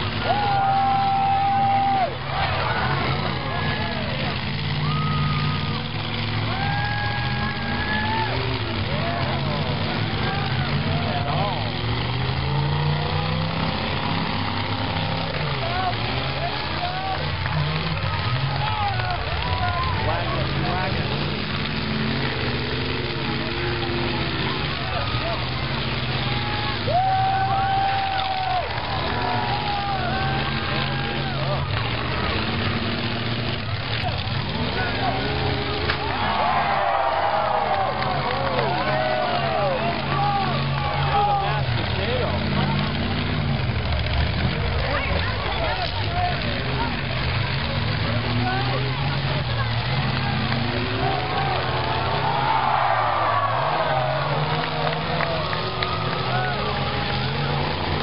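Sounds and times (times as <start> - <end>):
car engines revving: 0.0 - 58.0
crowd voices: 0.0 - 58.0.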